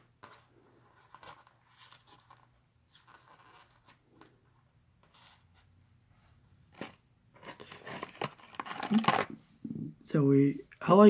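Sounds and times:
rustling of toy packaging: 0:00.4 - 0:04.0, 0:06.7 - 0:09.4.

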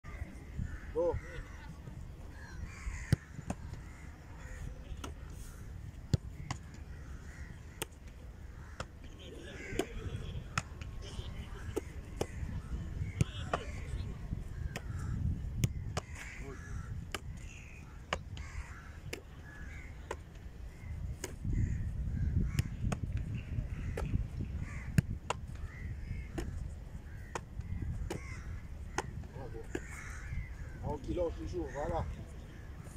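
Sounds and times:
wind rumble on microphone: 0:00.1 - 0:07.8, 0:08.4 - 0:31.4.

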